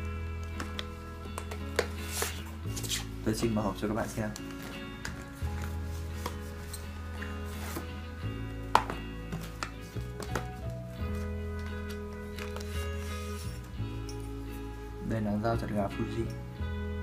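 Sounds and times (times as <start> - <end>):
slow background music chords: 0.0 - 17.0.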